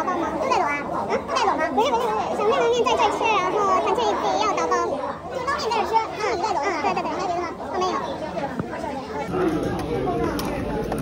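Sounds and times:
lively chatter of voices: 0.0s - 11.0s.

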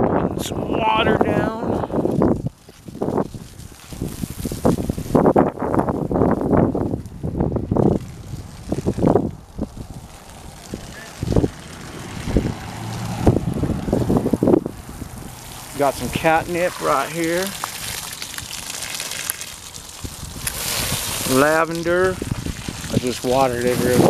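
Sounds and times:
wind buffeting microphone: 0.0s - 18.8s, 19.7s - 24.0s.

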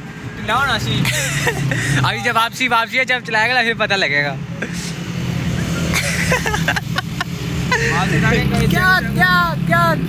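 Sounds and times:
passing vehicles: 0.0s - 10.0s.

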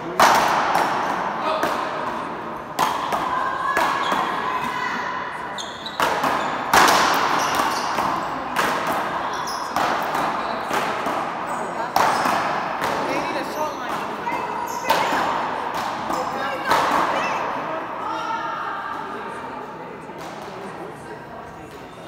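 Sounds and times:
paddleball hits echoing: 0.1s - 4.4s, 6.0s - 17.5s.

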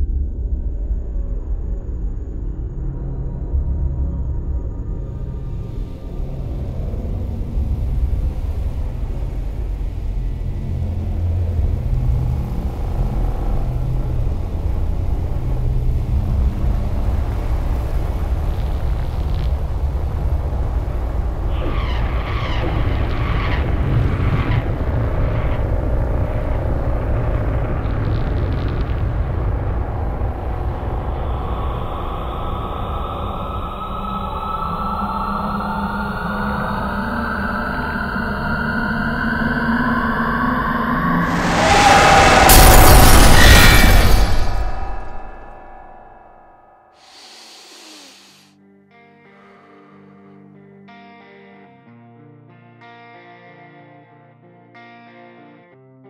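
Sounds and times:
heavy low rumble: 0.0s - 48.2s
dark soundtrack drone: 0.0s - 48.5s
rising tone: 36.2s - 48.5s.

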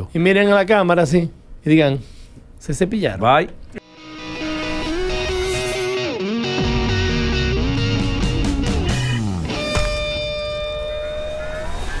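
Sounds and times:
sustained electronic tone: 3.8s - 7.8s, 8.8s - 12.0s
guitar-driven outro music: 3.8s - 11.8s
short rising sweep: 4.0s - 7.2s.

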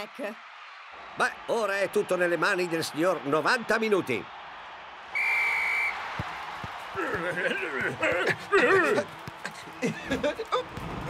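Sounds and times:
stadium crowd noise: 0.0s - 11.0s
referee's whistle blast: 5.1s - 6.0s.

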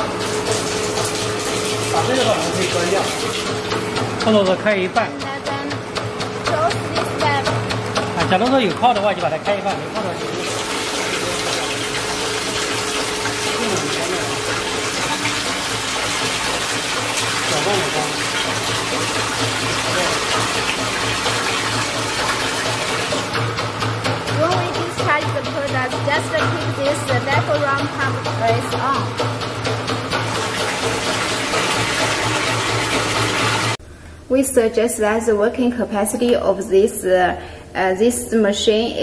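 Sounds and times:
liquid rushing into metal tank: 0.0s - 3.8s, 10.1s - 25.2s, 29.1s - 33.8s
low machine hum: 0.0s - 39.0s.

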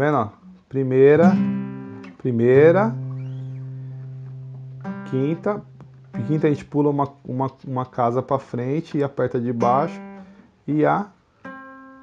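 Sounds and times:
acoustic guitar low note: 0.0s - 7.3s.

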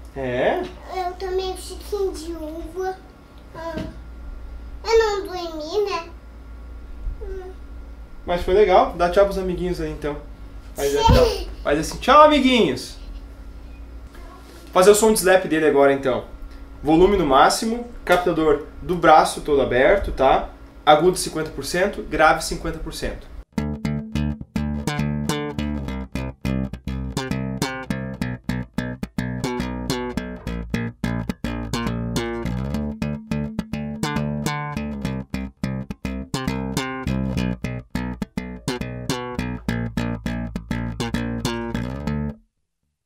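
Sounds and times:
slap bass guitar: 8.2s - 13.2s, 22.1s - 42.4s.

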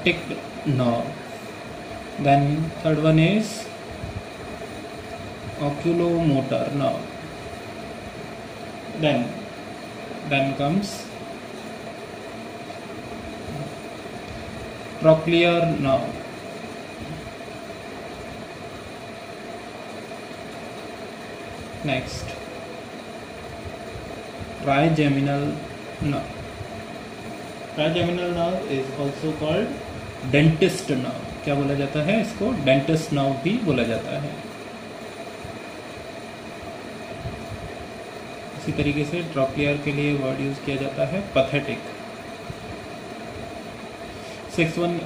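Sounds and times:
machinery hum: 0.0s - 45.0s.

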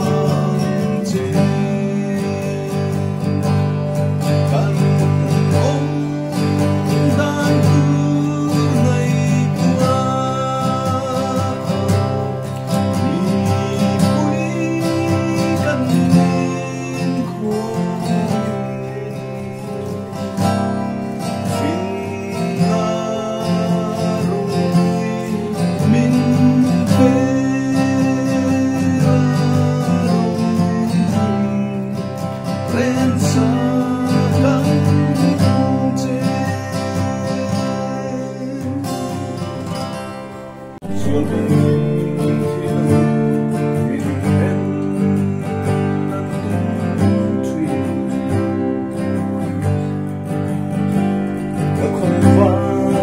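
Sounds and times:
man singing: 0.0s - 53.0s
strummed acoustic guitar: 0.0s - 53.0s.

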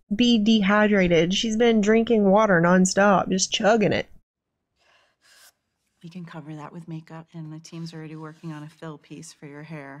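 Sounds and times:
faint breaths: 4.8s - 5.5s.

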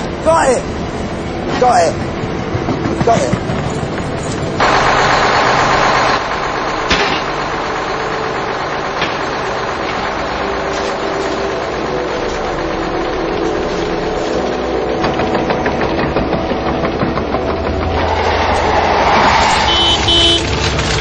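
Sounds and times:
engine running steadily: 0.0s - 21.0s.

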